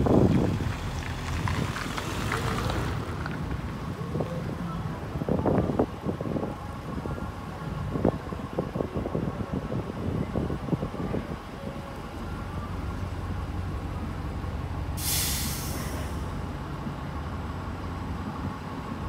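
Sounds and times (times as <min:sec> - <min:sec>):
bus diesel engine droning: 0:02.3 - 0:19.0.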